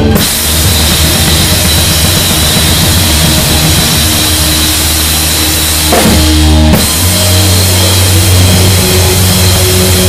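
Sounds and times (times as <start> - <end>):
steady low bass: 0.0 - 10.0.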